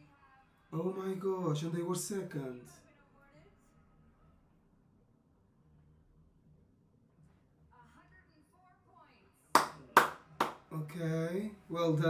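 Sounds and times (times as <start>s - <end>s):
hand claps: 9.6s - 10.7s.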